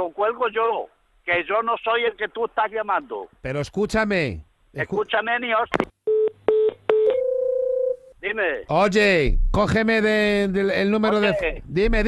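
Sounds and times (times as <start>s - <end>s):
steady telephone tone: 6.1s - 8.1s.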